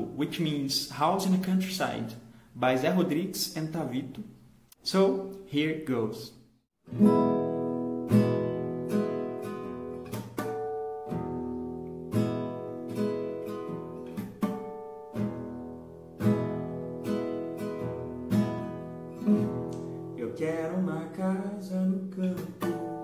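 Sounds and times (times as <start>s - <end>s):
classical guitar chords fingerstyle: 6.8s - 23.0s.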